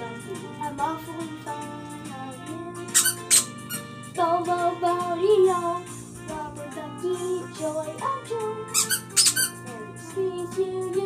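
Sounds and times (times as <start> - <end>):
backing music: 0.0 - 11.0
rubber duck toy squeaks: 2.9 - 3.9, 8.7 - 9.7.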